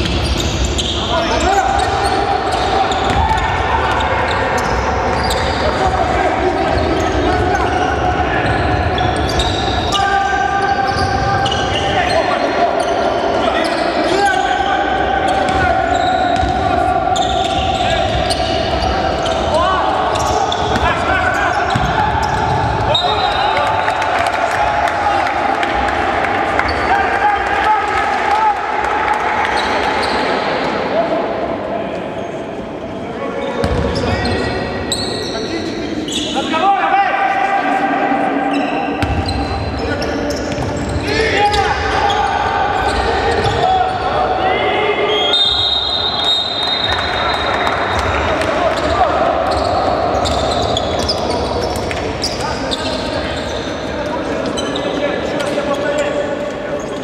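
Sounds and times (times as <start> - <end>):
players calling out: 0.0 - 32.6, 33.4 - 57.0.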